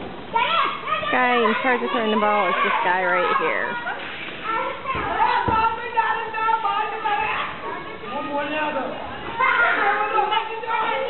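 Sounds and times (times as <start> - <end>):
children shouting while playing: 0.3 - 11.0.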